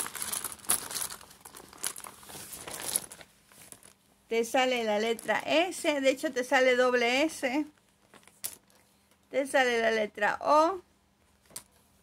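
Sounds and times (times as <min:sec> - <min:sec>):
metallic pouch crinkling: 0:00.0 - 0:04.0.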